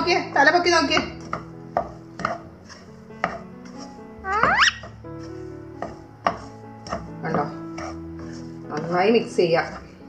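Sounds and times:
spatula scraping frying pan: 0.6s - 10.0s
parakeet call: 4.3s - 4.8s.

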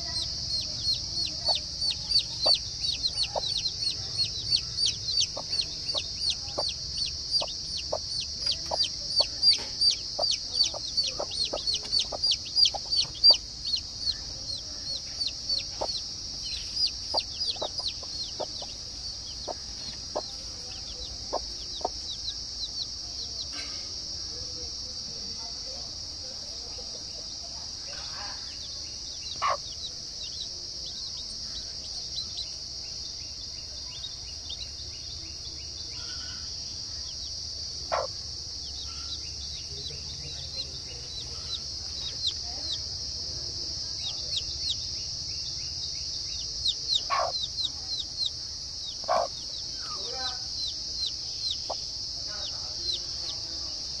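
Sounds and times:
hen clucking: 0.0s - 22.2s, 29.3s - 29.7s, 37.9s - 38.1s, 46.6s - 47.7s, 48.9s - 49.6s
chicks peeping: 0.0s - 23.5s, 27.2s - 54.0s
insect buzz: 0.0s - 54.0s.

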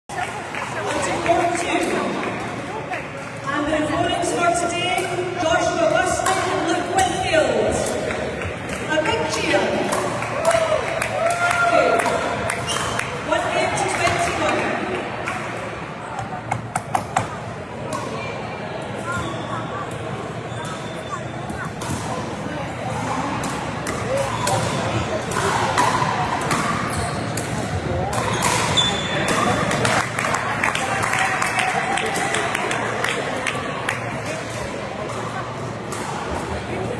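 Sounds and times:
players' voices and calls: 0.1s - 36.9s.

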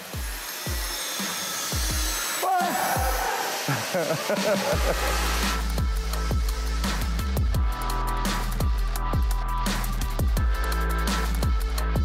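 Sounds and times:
electronic dance music: 0.0s - 12.0s
kick drum: 1.8s - 2.2s, 7.3s - 7.8s, 10.2s - 10.6s.

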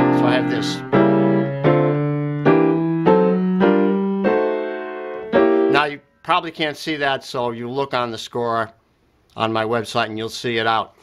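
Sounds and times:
piano chords ringing: 0.0s - 6.1s.

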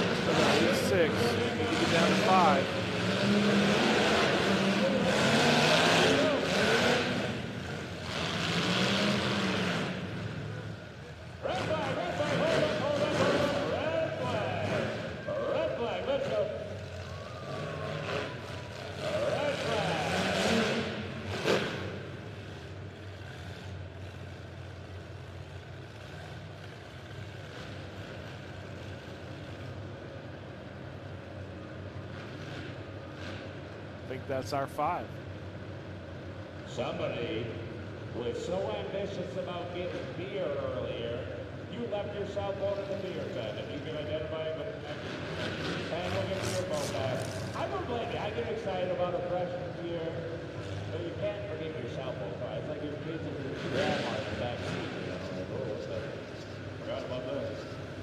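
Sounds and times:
crowd noise: 0.0s - 33.0s
car engines revving: 0.0s - 58.0s
engines idling: 0.0s - 58.0s.

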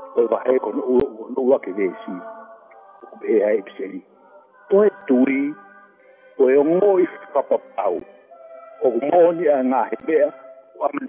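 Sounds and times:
man speaking: 0.1s - 2.3s, 3.1s - 4.0s, 4.7s - 5.6s, 6.4s - 8.1s, 8.8s - 11.0s.

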